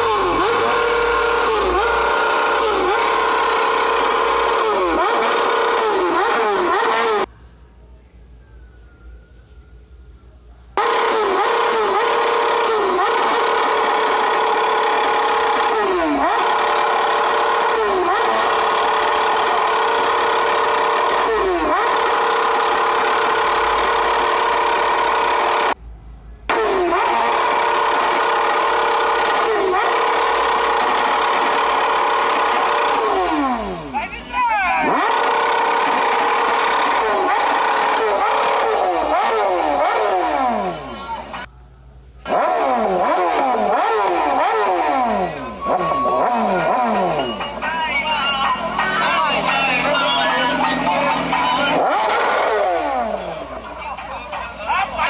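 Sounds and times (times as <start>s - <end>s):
motorcycle engine revving: 0.0s - 7.3s, 10.8s - 25.8s, 26.5s - 34.0s, 34.8s - 41.5s, 42.2s - 55.0s.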